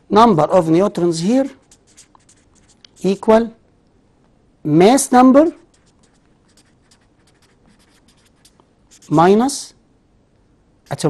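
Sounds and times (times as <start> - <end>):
marker writing on paper: 1.4 - 3.4, 5.6 - 9.3.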